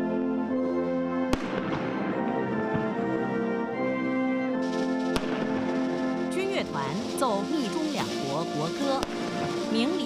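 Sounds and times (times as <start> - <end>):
brass band playing held chords: 0.0 - 10.0
salute gun blast: 1.3 - 2.2, 4.8 - 6.1.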